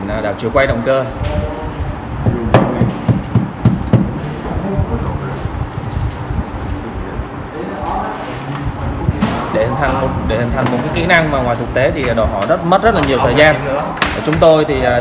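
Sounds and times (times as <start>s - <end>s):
screwdriver knocking on metal panel: 2.5s - 4.2s.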